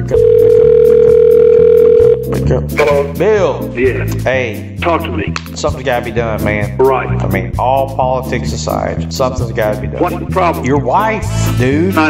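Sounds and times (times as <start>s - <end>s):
telephone ringback tone: 0.0s - 2.2s
low background beat: 0.0s - 11.9s.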